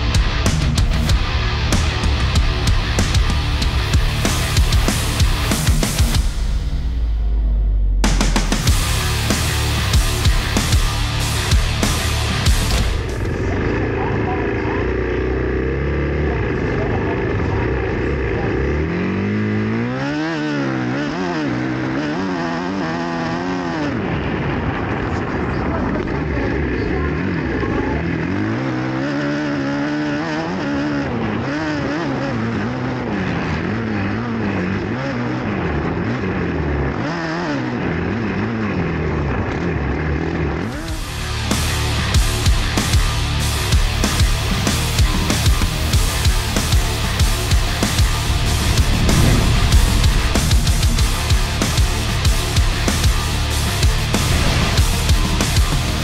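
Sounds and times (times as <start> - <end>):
motocross engine revving: 0.0 - 6.8, 7.9 - 56.0
music: 0.0 - 13.5, 40.6 - 56.0.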